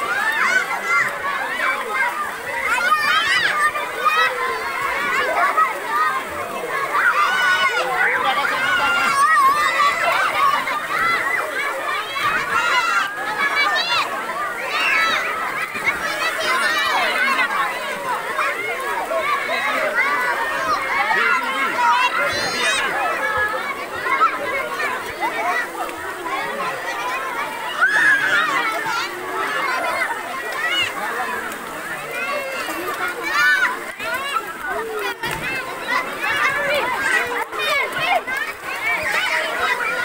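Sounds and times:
children chattering and shouting: 0.0 - 40.0.

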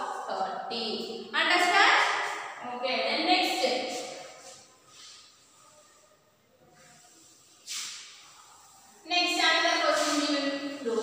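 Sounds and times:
cloth rubbing on chalkboard: 3.9 - 11.0
duster swish: 6.8 - 11.0.

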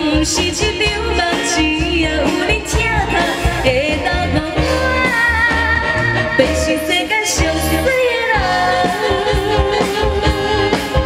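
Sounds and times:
live band with bass beat: 0.0 - 11.0
woman singing into a microphone: 0.0 - 11.0.

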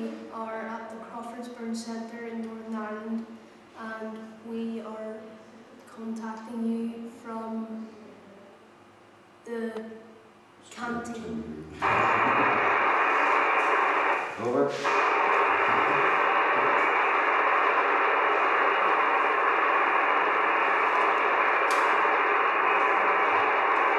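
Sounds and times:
radio static hiss: 10.8 - 23.9
short voice over radio: 11.1 - 12.8.

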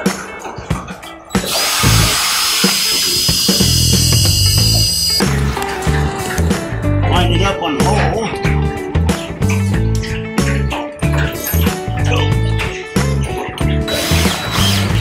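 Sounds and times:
background music with a beat: 0.0 - 7.0, 7.8 - 15.0
cordless drill boring into wood: 1.4 - 5.3, 13.9 - 15.0.

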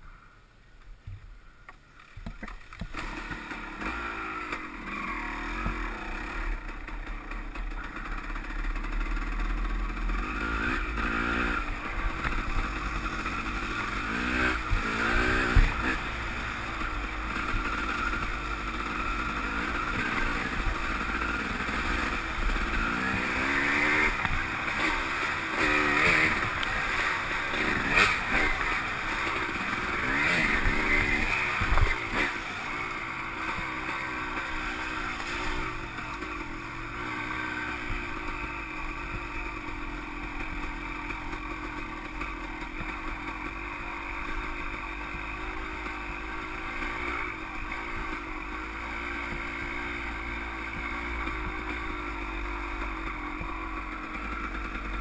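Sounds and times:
dirt bike engine revving: 2.0 - 55.0.

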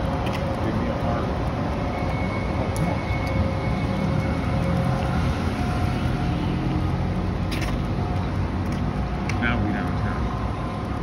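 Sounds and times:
cars passing: 0.0 - 11.0.

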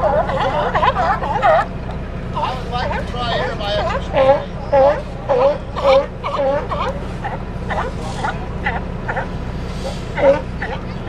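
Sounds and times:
sea lions barking: 0.0 - 11.0
steady low rumble: 0.0 - 11.0.

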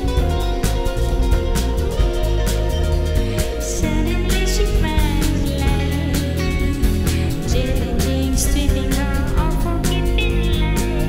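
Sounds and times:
electric bass line: 0.0 - 11.0
live band instrumental music: 0.0 - 11.0.

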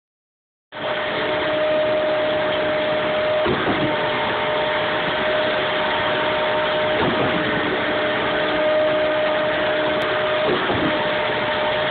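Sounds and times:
concrete pump machine drone: 0.7 - 11.9.

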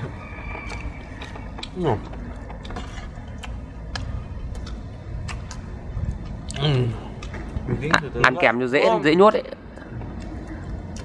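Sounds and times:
low steady rumble: 0.0 - 11.0
crunchy chewing: 0.1 - 8.0.

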